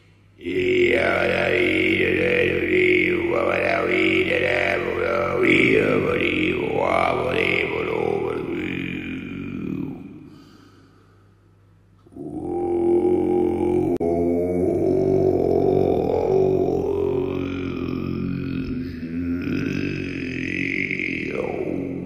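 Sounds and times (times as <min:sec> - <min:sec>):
didgeridoo drone: 0:00.4 - 0:10.6, 0:12.0 - 0:22.0.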